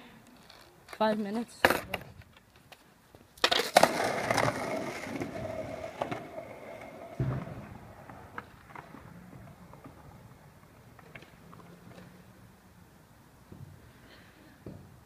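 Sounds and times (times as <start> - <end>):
skateboard wheels rolling on asphalt: 0.2 - 13.8
skateboard clacks: 3.4 - 12.2
skateboard knock: 7.1 - 10.0.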